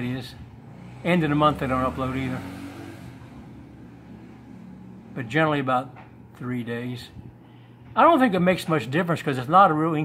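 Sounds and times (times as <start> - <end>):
low background hum: 3.4 - 10.0.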